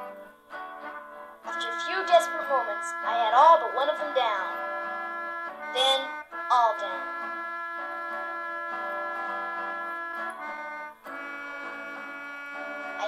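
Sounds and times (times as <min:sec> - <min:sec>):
held keyboard chords: 0:00.0 - 0:13.0.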